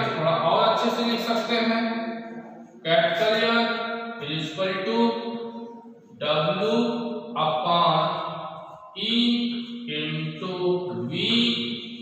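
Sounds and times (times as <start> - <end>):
man chanting: 6.1 - 8.3, 9.0 - 11.8.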